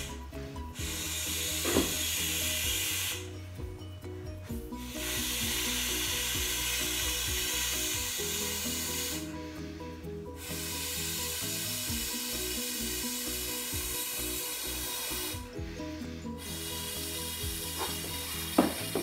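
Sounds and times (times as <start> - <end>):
air blown into inflatable valve: 0.0 - 3.9, 4.5 - 19.0
background music with low notes: 0.0 - 19.0.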